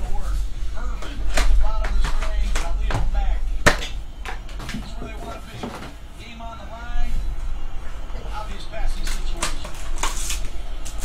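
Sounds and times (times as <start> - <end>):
television voices: 0.0 - 11.0.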